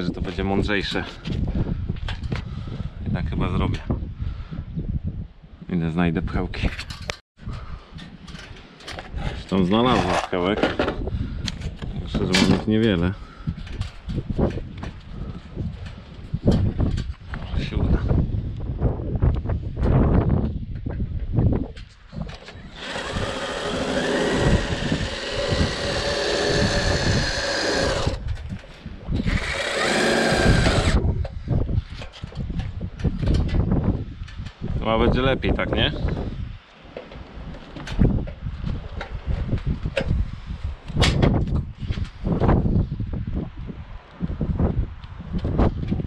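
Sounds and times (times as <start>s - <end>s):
tools and parts clattering: 8.0s - 11.0s
cordless drill running: 22.6s - 28.2s, 29.2s - 31.0s.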